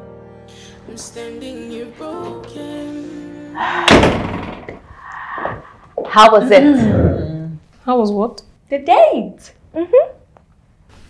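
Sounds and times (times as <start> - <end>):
door banging open: 3.8 - 4.9.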